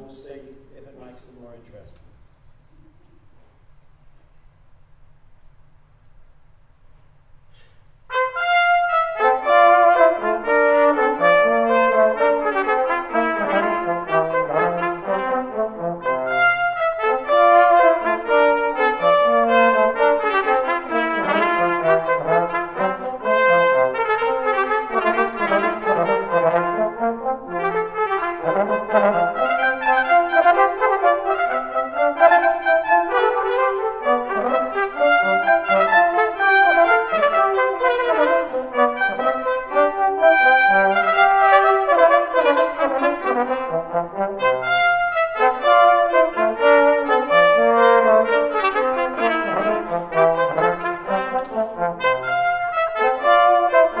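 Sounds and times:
trombone: 8.1s - 54.0s
trumpet: 8.1s - 54.0s.

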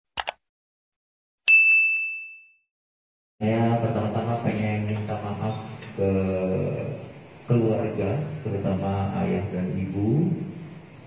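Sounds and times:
mouse clicks: 0.2s - 0.4s
bright bell ding: 1.5s - 2.7s.

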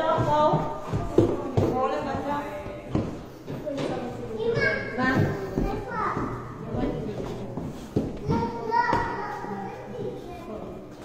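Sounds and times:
children chattering and calling out: 3.5s - 11.0s.

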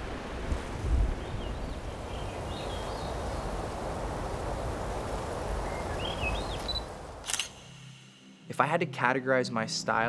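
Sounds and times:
camera shutter click: 7.2s - 7.7s.

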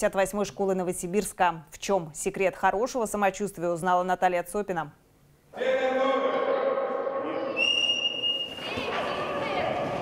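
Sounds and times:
crowd voices: 6.0s - 10.0s
sports whistle blast: 7.5s - 8.7s.

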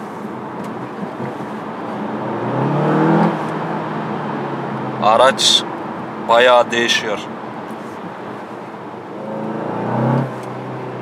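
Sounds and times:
car engine accelerating: 0.5s - 5.0s, 9.0s - 11.0s.

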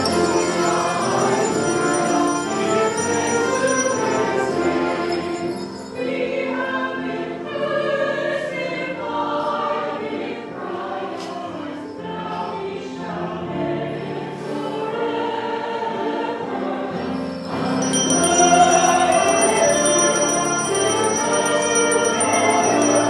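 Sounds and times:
choir and congregation singing hymn: 0.0s - 23.0s.

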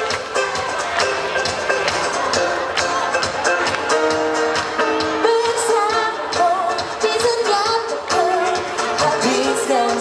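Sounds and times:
live pop band playing: 0.0s - 10.0s
person singing with vibrato: 5.0s - 10.0s.

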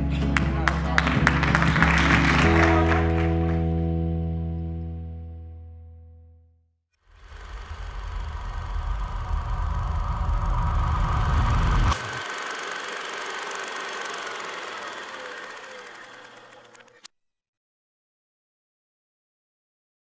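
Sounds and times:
low rattling rumble: 7.2s - 12.4s.

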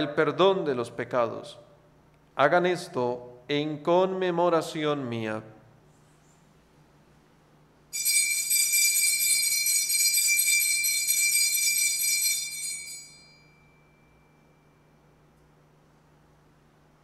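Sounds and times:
altar bells jingling: 8.0s - 14.8s.

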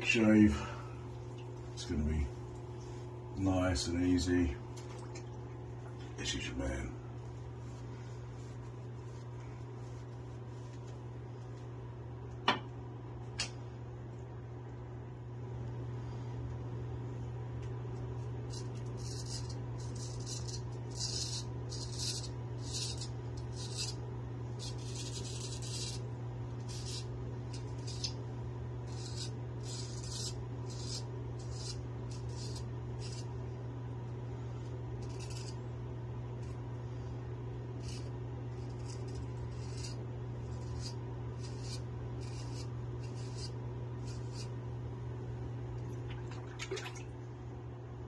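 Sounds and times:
steady low hum: 0.0s - 48.0s
razor scraping stubble: 18.2s - 33.4s, 34.6s - 35.8s, 37.6s - 44.6s.

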